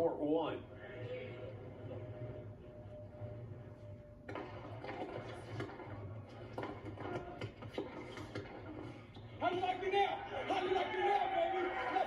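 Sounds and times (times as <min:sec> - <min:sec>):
steady low hum: 0:00.0 - 0:10.5
tennis match on tv: 0:00.0 - 0:12.0.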